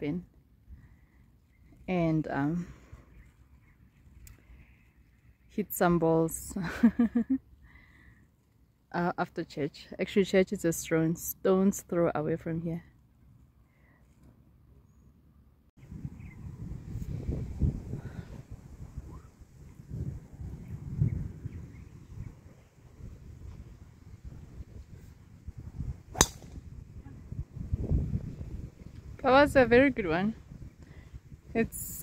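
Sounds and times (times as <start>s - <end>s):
wind rumble on microphone: 15.8s - 32.0s
golf club striking ball: 26.1s - 26.7s.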